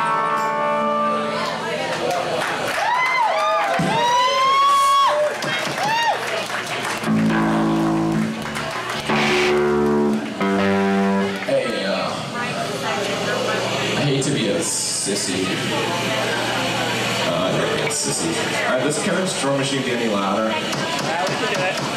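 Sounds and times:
rock band holding long chords: 6.9 - 12.5.

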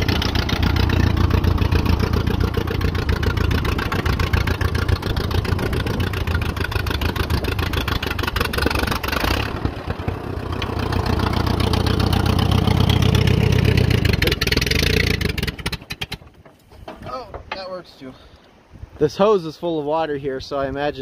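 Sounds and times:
tractor engine running: 0.0 - 17.6.

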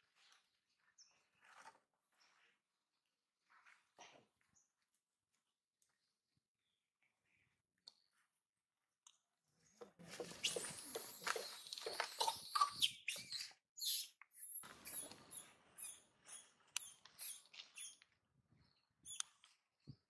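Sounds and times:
monkey screaming and squealing: 10.3 - 18.0.

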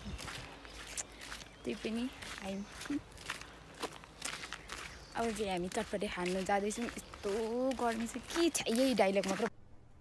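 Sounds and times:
quiet footsteps walking: 0.0 - 9.5.

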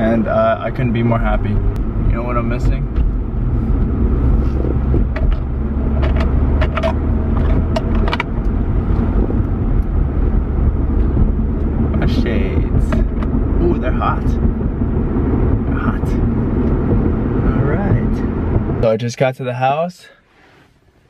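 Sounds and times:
car cabin road and engine noise: 0.0 - 21.0.

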